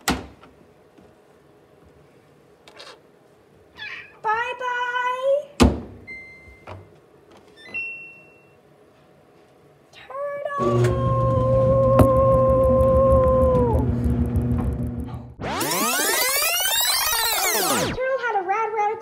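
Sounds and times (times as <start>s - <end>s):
electronic beeps: 15.4s - 18.0s.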